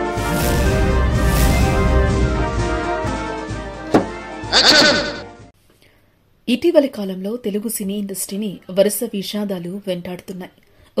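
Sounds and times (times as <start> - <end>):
intro jingle sharp hit: 0.0 - 4.5.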